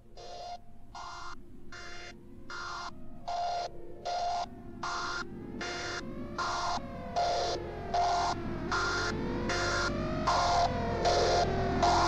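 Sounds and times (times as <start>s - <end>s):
buzzy pulsing synth tone: 0.0s - 12.0s
steady low hum: 0.0s - 12.0s.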